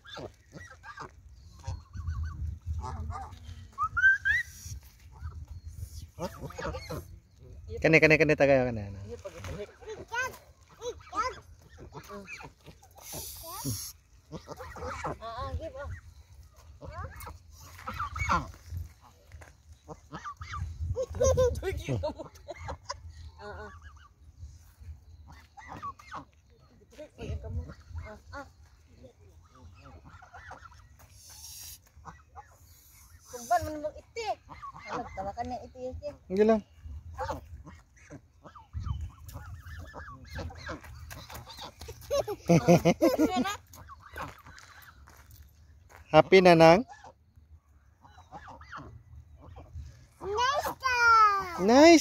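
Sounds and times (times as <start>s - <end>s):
geese honking: 16.7s - 19.2s, 29.3s - 35.5s, 48.0s - 50.8s.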